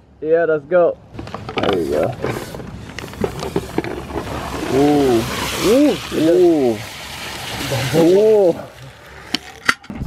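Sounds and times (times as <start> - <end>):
liquid nitrogen hissing and crackling: 1.2 - 9.9.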